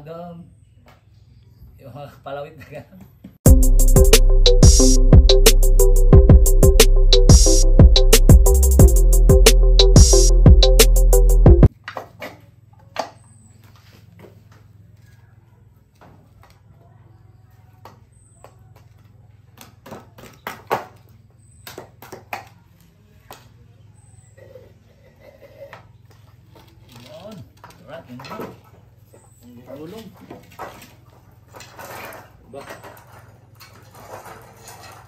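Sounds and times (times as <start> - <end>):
background music: 3.5 - 11.7.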